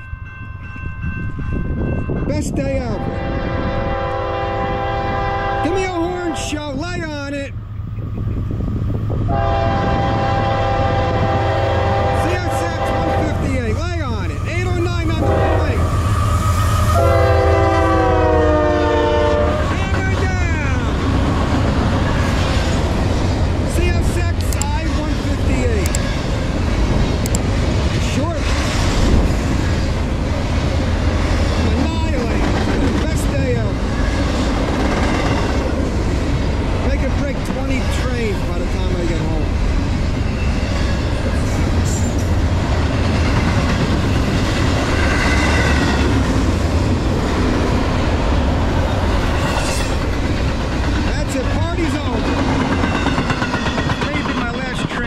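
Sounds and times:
locomotives rumbling: 0:02.4 - 0:55.0
train horn: 0:03.0 - 0:06.6, 0:09.3 - 0:13.5, 0:15.2 - 0:16.0, 0:16.8 - 0:19.8
sharp clanks of train cars: 0:24.1 - 0:26.3, 0:49.3 - 0:55.0.

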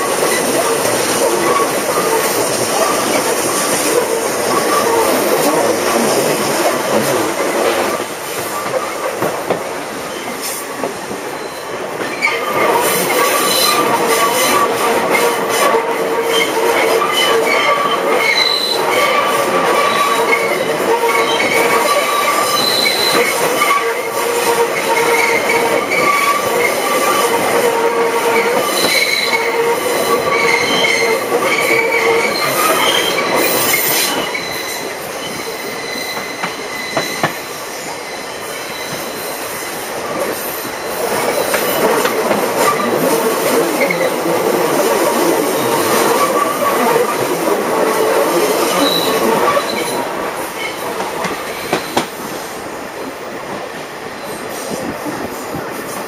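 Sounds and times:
train coaches running on track: 0:00.0 - 0:56.0.

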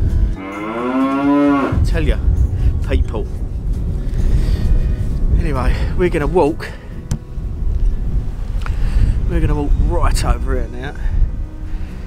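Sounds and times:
cow mooing: 0:00.4 - 0:01.8.

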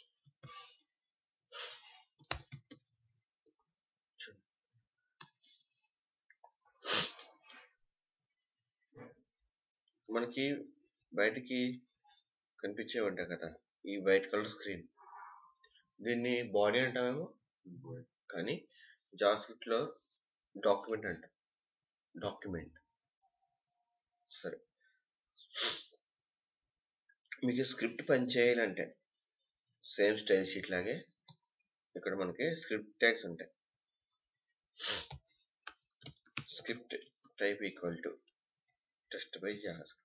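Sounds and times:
keyboard and mouse clicks: 0:02.1 - 0:03.0, 0:35.0 - 0:37.4.

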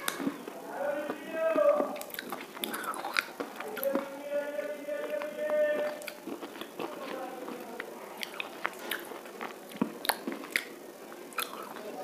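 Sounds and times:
person biting and chewing: 0:00.0 - 0:04.2, 0:04.9 - 0:11.9.

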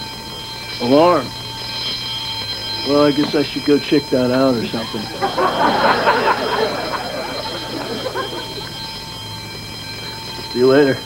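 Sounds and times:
high-pitched electronic alarm tone: 0:00.0 - 0:11.0
studio audience laughing: 0:04.6 - 0:08.9.

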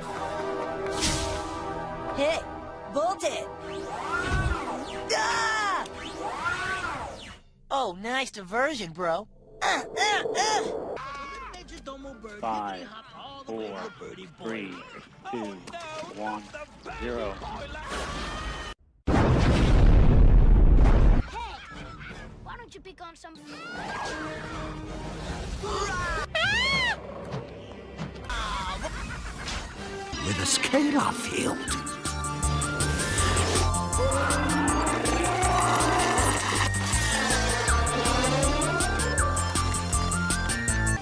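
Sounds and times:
cartoon explosion: 0:19.1 - 0:21.2
cartoon music with ticking beat: 0:37.7 - 0:41.0.

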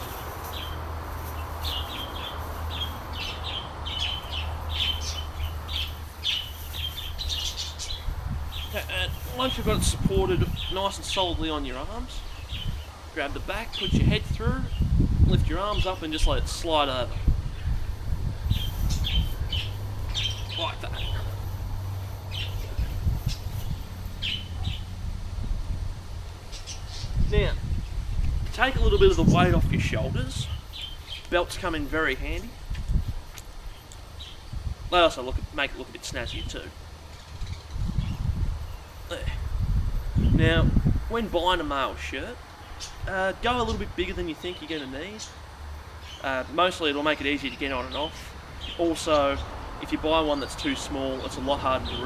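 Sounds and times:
small birds chirping: 0:00.0 - 0:25.1, 0:26.3 - 0:52.0.

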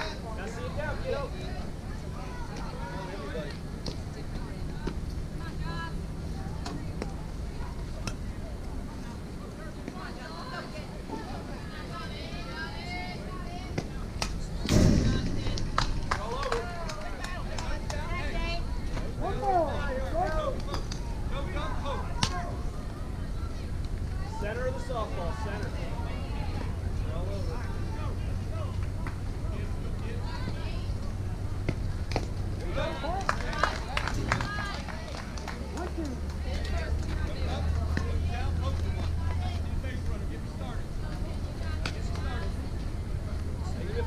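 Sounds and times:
loud burst near microphone: 0:14.6 - 0:16.2.

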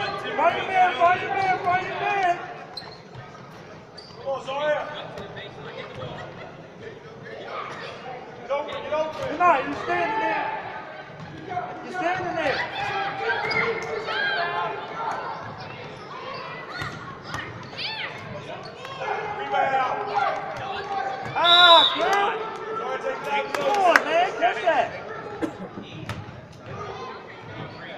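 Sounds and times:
spectators' voices: 0:00.0 - 0:27.9
shoe squeak: 0:02.7 - 0:03.3, 0:03.9 - 0:04.4
sneaker squeaks: 0:02.7 - 0:04.5, 0:13.4 - 0:14.1.

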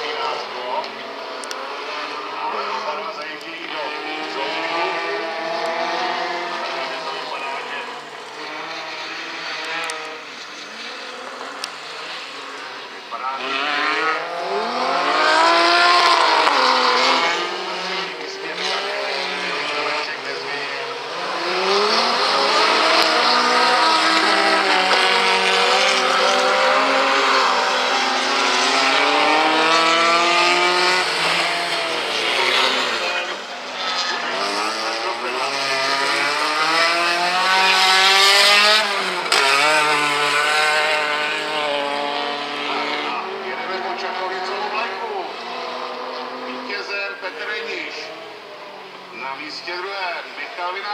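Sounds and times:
rally car engines revving: 0:00.0 - 0:50.9.

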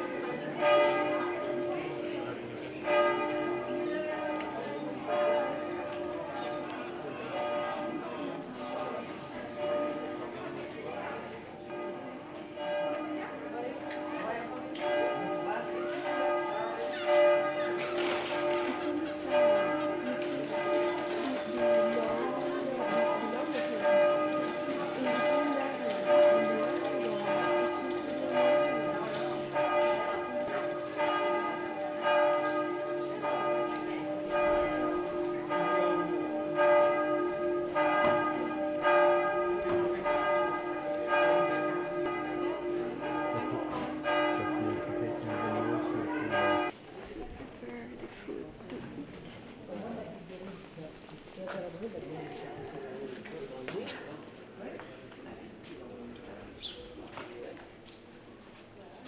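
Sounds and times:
church bells ringing: 0:00.0 - 0:46.9.

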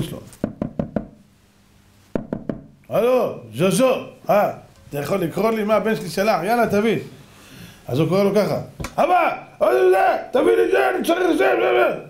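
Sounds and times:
knuckles knocking on hard surface: 0:00.4 - 0:01.2, 0:02.2 - 0:02.7.

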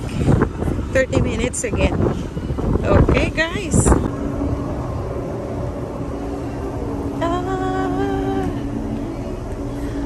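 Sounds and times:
steady low hum: 0:00.0 - 0:10.0
wind rumble on microphone: 0:00.0 - 0:10.0.

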